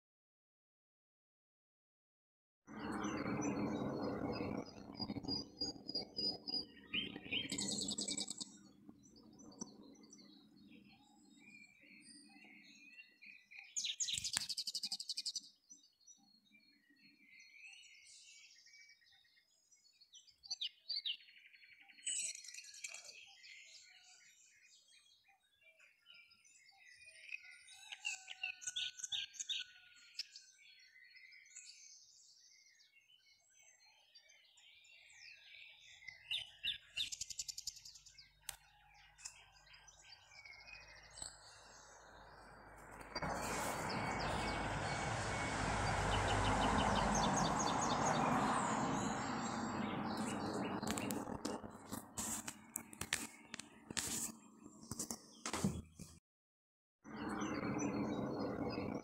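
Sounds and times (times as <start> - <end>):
small bird chirping and trilling: 2.8 - 45.5, 46.4 - 56.0.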